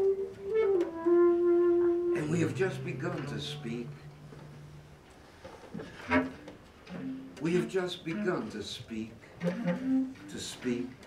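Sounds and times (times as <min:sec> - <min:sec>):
bass clarinet sustained note: 0:00.0 - 0:05.1.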